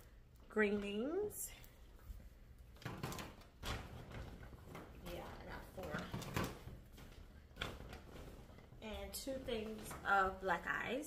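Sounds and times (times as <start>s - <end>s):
bags rustling: 1.9s - 11.0s.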